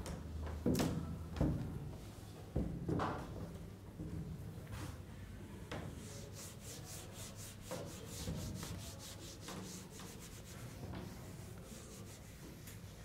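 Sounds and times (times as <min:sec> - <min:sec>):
marker writing on whiteboard: 0:06.2 - 0:12.9.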